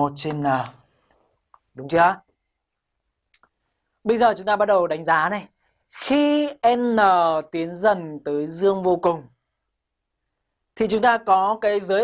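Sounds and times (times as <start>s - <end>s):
man speaking: 0.0s - 0.9s, 1.7s - 2.3s, 4.0s - 9.4s, 10.7s - 12.0s.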